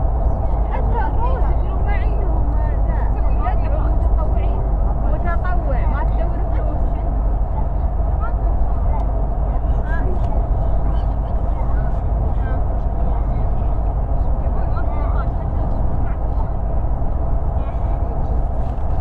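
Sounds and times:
road and engine rumble: 0.0s - 19.0s.

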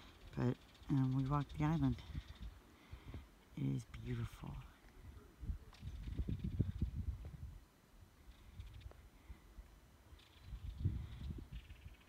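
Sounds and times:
wind buffeting microphone: 4.3s - 7.7s, 8.3s - 9.0s, 10.1s - 12.0s.

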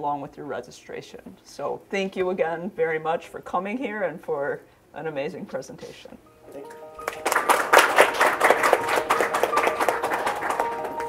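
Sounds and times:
soft held music notes: 3.4s - 7.3s
audience applauding: 6.6s - 11.0s.

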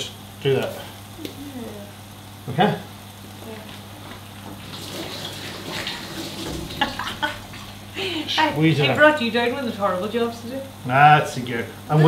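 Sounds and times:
kitchen tap running water: 4.4s - 7.9s.

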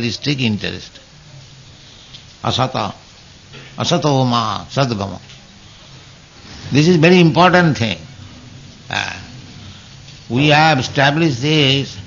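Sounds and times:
tape hum and hiss: 0.0s - 12.0s.

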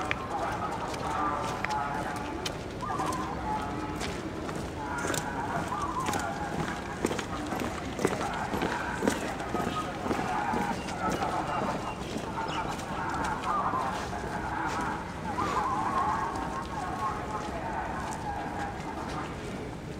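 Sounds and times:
chatter of onlookers: 0.0s - 19.9s.

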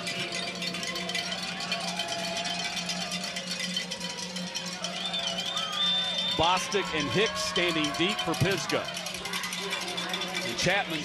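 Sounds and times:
distant voices: 0.0s - 11.0s
stadium music: 0.0s - 11.0s.

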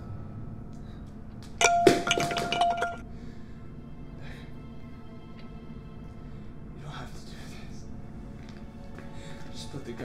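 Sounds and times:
bright clinking with ringing tone: 1.6s - 3.0s.

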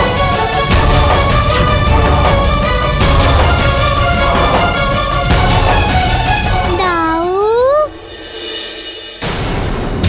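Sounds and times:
dramatic background music: 0.0s - 10.0s
boy crying in pain: 6.8s - 7.9s.

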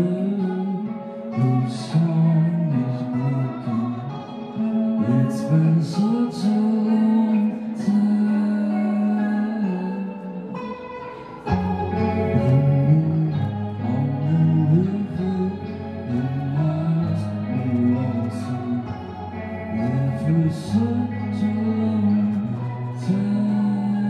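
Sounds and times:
electric guitar: 0.0s - 24.0s
man singing: 0.0s - 24.0s.

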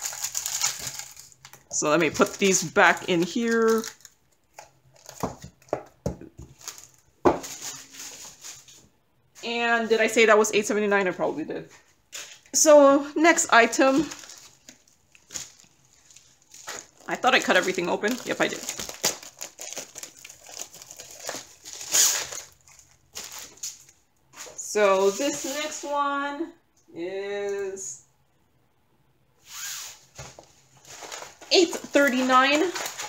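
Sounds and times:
plastic packaging crinkling: 0.0s - 8.8s, 13.8s - 24.6s, 30.2s - 33.0s.

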